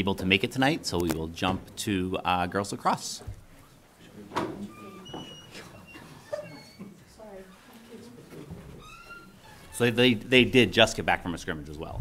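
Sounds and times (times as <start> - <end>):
short high squeaks: 4.7 - 7.7, 8.8 - 9.9.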